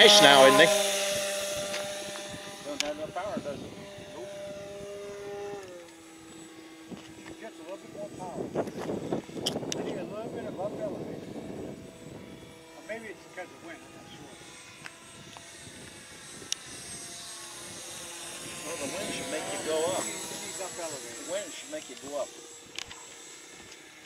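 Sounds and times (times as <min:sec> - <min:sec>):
model plane motor droning: 0:00.0 - 0:24.0.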